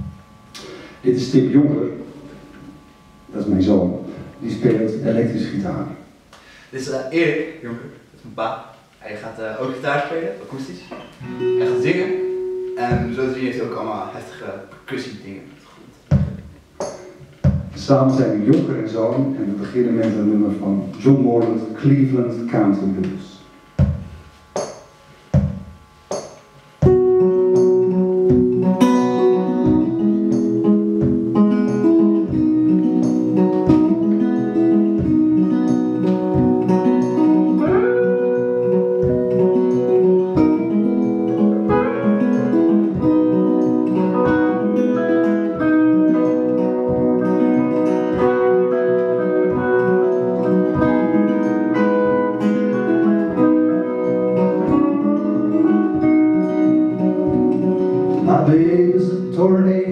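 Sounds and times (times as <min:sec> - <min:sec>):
acoustic guitar: 0:00.0 - 0:06.6, 0:09.7 - 0:59.9
electric guitar: 0:11.0 - 0:13.1, 0:26.8 - 0:59.9
steady low beat: 0:11.2 - 0:13.6, 0:23.5 - 0:58.9.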